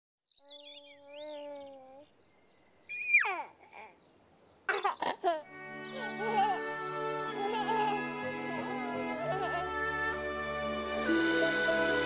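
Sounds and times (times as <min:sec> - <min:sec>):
bird-like chirps: 0:00.2 - 0:05.2
baby giggling and babbling: 0:00.4 - 0:02.1, 0:02.9 - 0:04.0, 0:04.7 - 0:09.8
theme music with held notes: 0:05.5 - 0:12.0.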